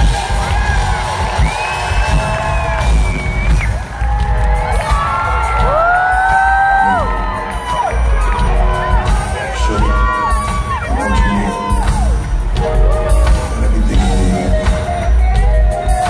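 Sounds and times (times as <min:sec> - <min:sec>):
audience cheering and whooping: 0:00.0 - 0:16.0
live pop band with heavy bass beat: 0:00.0 - 0:16.0.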